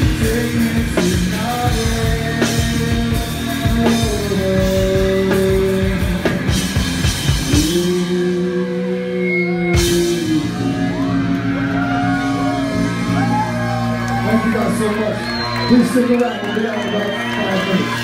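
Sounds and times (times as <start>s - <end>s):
metal band playing: 0.0s - 18.0s.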